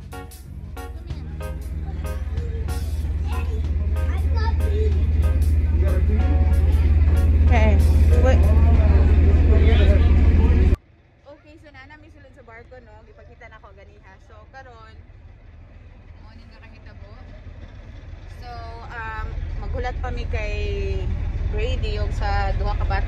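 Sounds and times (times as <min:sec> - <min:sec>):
boat engines rumbling: 0:00.0 - 0:23.0
passengers' voices: 0:00.8 - 0:11.6.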